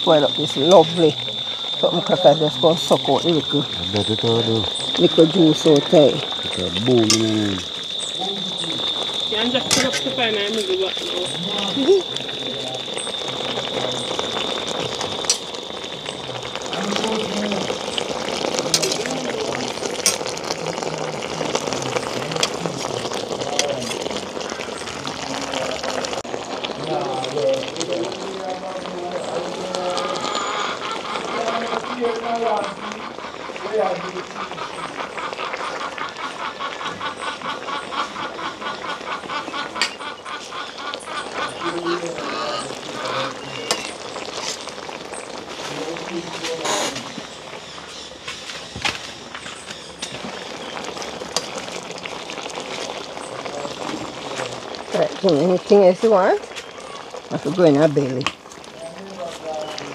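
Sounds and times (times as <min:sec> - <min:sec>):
steady high tone: 0:00.0 - 0:19.7
rapid even chirping: 0:00.0 - 0:22.4, 0:29.1 - 0:59.9
indistinct voices talking: 0:00.0 - 0:59.9.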